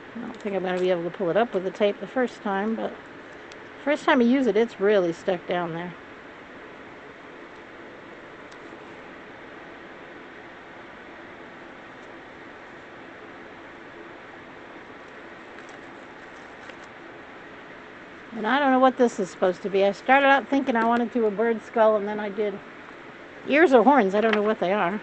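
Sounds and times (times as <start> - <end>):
room noise hiss: 0.0 - 25.0.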